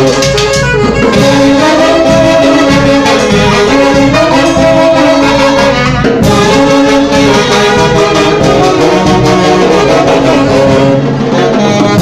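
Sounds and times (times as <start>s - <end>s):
saxophone band playing dance music: 0.0s - 12.0s.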